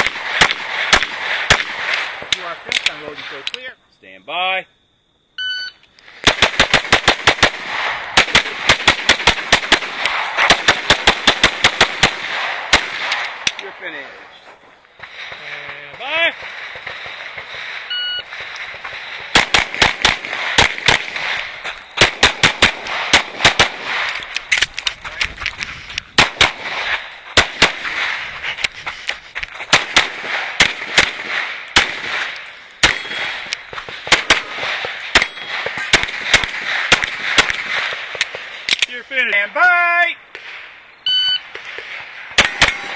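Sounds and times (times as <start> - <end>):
rapid pistol fire: 0.0 - 2.6, 6.2 - 13.6, 15.0 - 24.3, 26.1 - 28.3, 29.7 - 38.6, 41.5 - 42.9.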